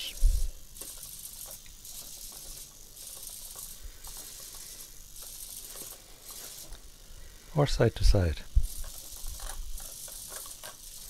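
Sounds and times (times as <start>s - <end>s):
servo motors whirring: 0.0s - 11.0s.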